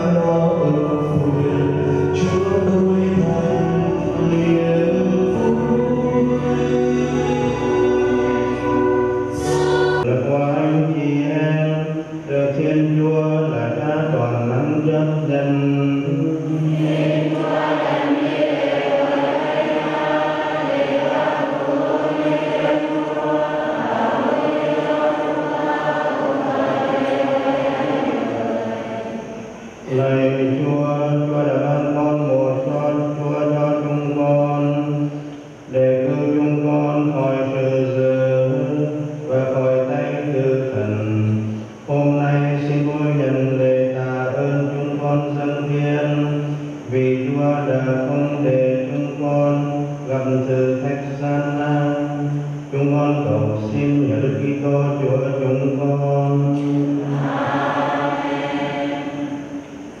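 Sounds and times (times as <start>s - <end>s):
low voices chanting: 0.0s - 10.1s, 16.2s - 33.8s, 52.6s - 60.0s.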